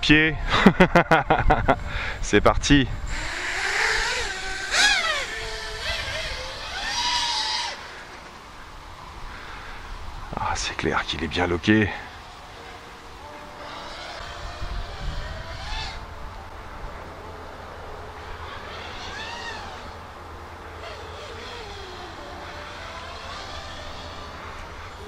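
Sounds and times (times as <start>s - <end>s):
quadcopter motors whining: 0.6s - 25.0s.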